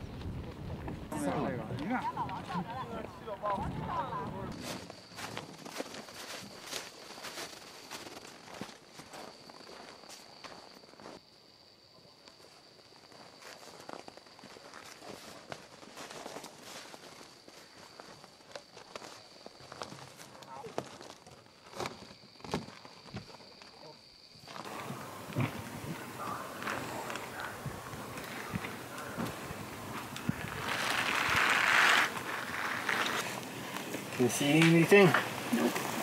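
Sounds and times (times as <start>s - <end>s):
footsteps in snow: 4.5s - 11.2s, 24.4s - 36.0s.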